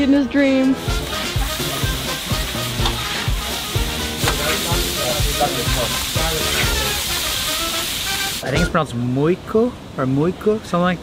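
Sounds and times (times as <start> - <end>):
background music with steady beat: 0.0 - 8.8
fish sizzling in butter: 0.8 - 8.6.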